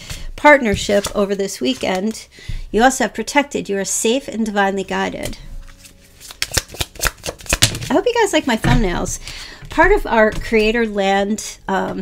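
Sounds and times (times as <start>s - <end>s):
cards being shuffled: 0.8s - 2.2s, 5.6s - 8.0s.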